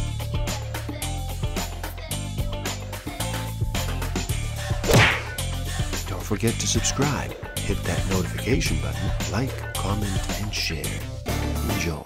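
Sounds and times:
whip-like swoosh and hit: 4.8s - 5.4s.

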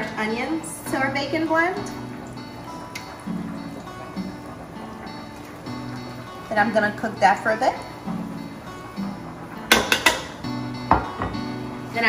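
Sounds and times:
background music: 0.0s - 12.0s
metal tongs clacking: 9.7s - 10.4s.

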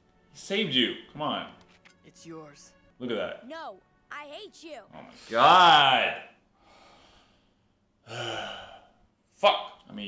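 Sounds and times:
man sighing: 8.0s - 9.0s.

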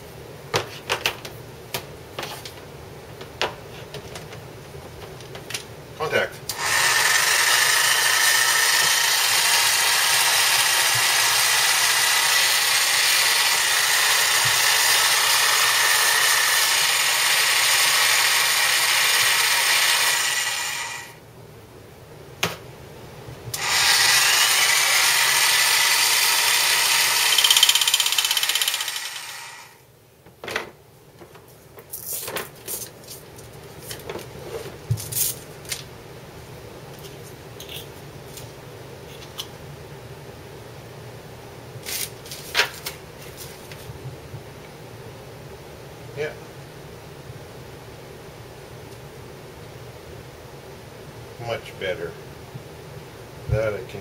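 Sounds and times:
reciprocating saw running: 6.5s - 21.2s, 23.6s - 29.8s.

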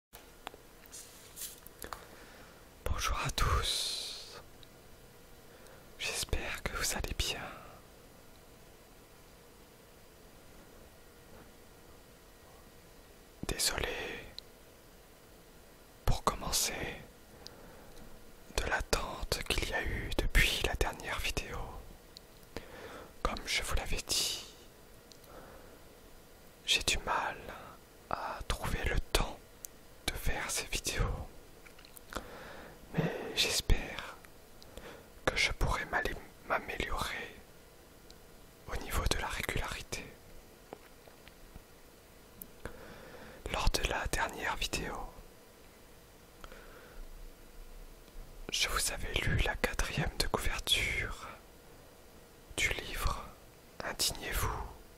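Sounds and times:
person whispering: 2.8s - 4.5s, 6.0s - 7.8s, 13.4s - 14.4s, 16.1s - 17.1s, 18.5s - 21.8s, 23.2s - 24.7s, 26.6s - 29.4s, 30.1s - 31.3s, 32.9s - 34.2s, 35.3s - 37.4s, 38.7s - 40.2s, 43.4s - 45.2s, 48.5s - 51.4s, 52.6s - 54.8s.

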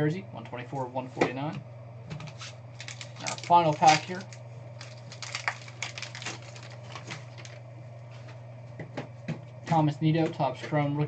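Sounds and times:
steady low hum: 0.0s - 11.0s
plastic wrapper crinkling: 2.2s - 7.6s.

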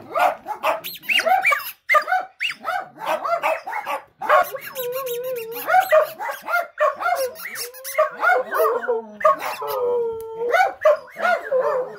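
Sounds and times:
dogs howling and yipping: 0.0s - 11.9s.

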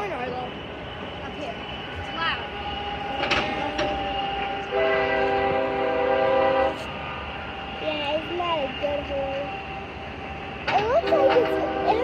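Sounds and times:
locomotive air horn blast: 1.6s - 7.0s, 11.1s - 12.0s.

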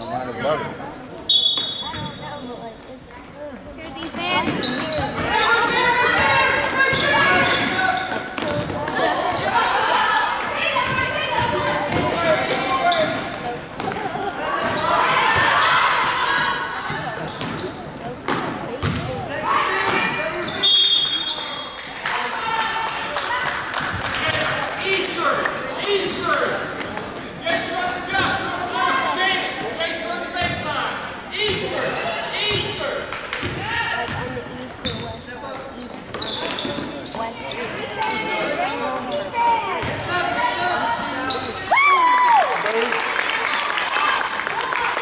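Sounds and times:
echoing crowd voices: 0.0s - 45.0s.

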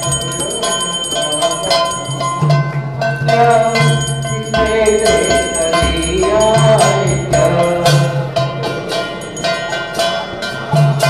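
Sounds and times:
bell ringing: 0.0s - 11.0s
devotional music: 0.0s - 11.0s.

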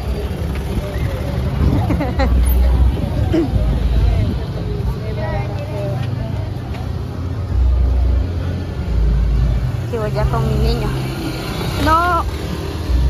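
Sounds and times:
motor vehicle rumbling: 0.0s - 13.0s.

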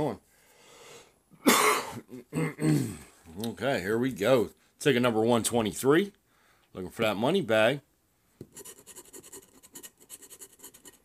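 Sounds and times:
scratching lottery ticket: 8.6s - 11.0s.

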